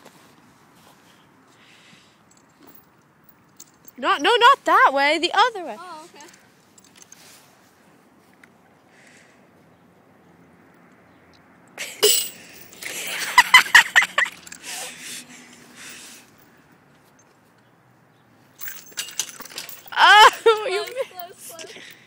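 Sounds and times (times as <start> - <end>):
swing chains clinking and rattling: 2.3 - 4.5, 5.9 - 7.4, 11.8 - 17.5, 18.6 - 22.0
person laughing: 12.9 - 14.5, 20.0 - 21.7.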